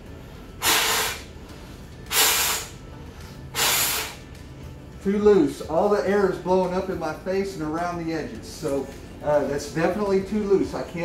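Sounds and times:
breath blowing through face mask: 0:00.4 - 0:04.4.

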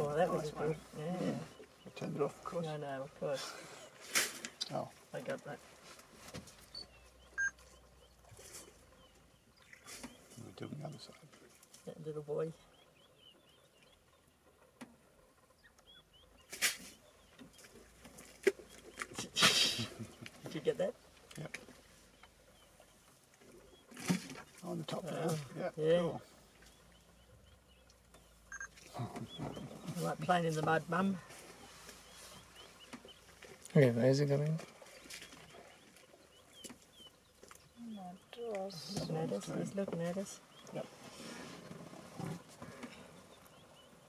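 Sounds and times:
faint bird chirps: 0:06.5 - 0:11.2, 0:25.1 - 0:33.6.

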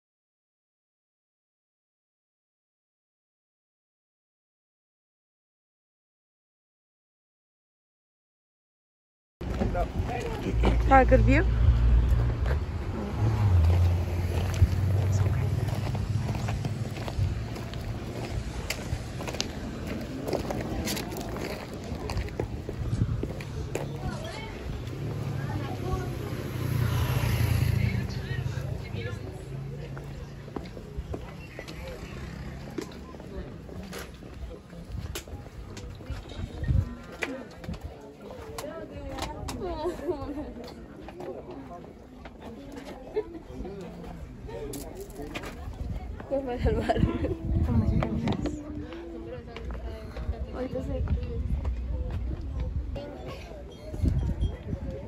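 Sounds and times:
faint voices: 0:09.4 - 0:55.0
footsteps on dirt and paving: 0:12.0 - 0:25.2, 0:29.2 - 0:38.9.

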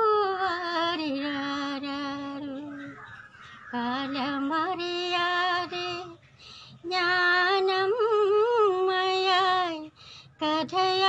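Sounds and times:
woman singing: 0:00.0 - 0:03.0, 0:03.6 - 0:11.0.

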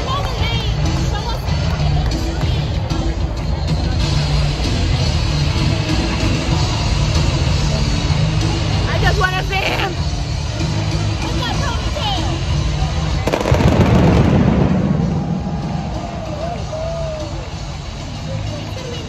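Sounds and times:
arena crowd: 0:00.0 - 0:19.0
pyrotechnics burst: 0:13.3 - 0:15.7.

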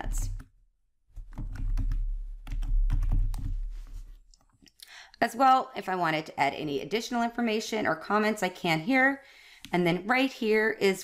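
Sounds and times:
computer keyboard typing: 0:01.2 - 0:03.6.

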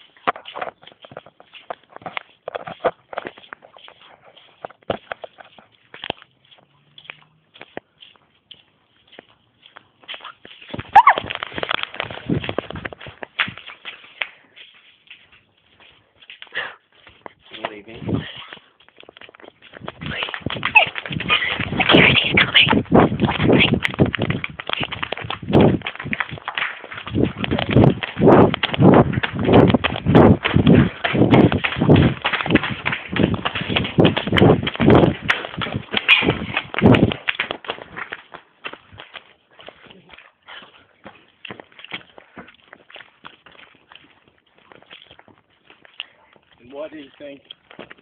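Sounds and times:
rapid uneven thuds: 0:19.7 - 0:39.1.

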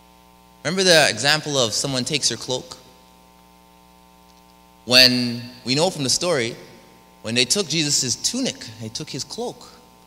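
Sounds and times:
faint mains hum: 0:00.0 - 0:10.0
man speaking: 0:00.7 - 0:02.9, 0:04.9 - 0:09.8.

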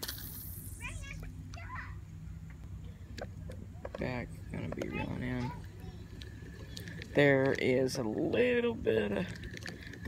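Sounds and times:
low steady hum: 0:00.0 - 0:10.0
distant voices: 0:00.4 - 0:10.0.

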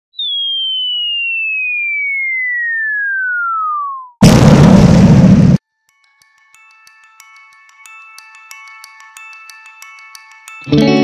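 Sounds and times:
falling bomb whistle: 0:00.2 - 0:04.3.

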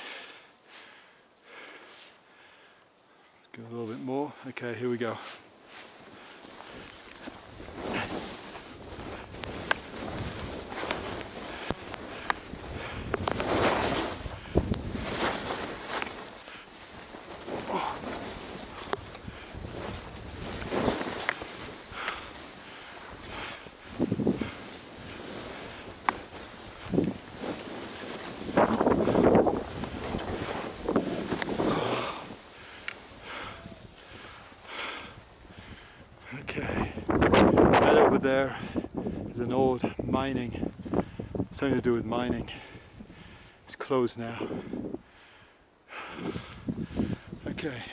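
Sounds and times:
skis hissing through snow: 0:04.8 - 0:36.0
wind buffeting microphone: 0:06.1 - 0:43.6, 0:46.0 - 0:47.9.

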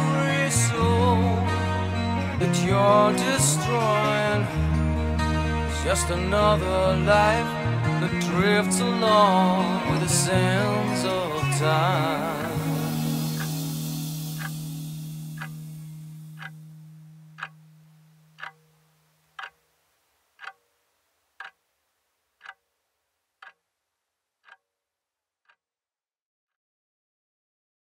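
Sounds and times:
heavy rock chord: 0:00.0 - 0:17.8
clock ticking: 0:08.1 - 0:19.7, 0:20.4 - 0:20.6, 0:21.4 - 0:21.6, 0:22.4 - 0:22.6, 0:23.4 - 0:23.6, 0:24.4 - 0:24.6.

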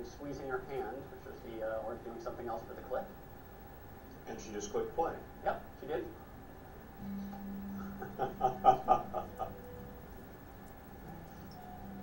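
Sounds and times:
person laughing: 0:07.8 - 0:09.7.

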